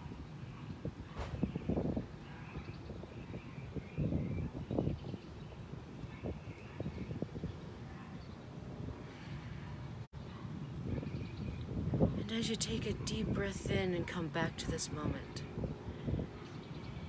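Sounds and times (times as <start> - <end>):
wind gusting on microphone: 0.0 - 17.0.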